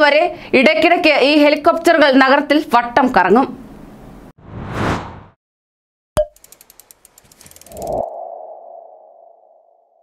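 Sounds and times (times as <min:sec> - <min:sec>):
quick ticks: 0:06.2 - 0:08.0.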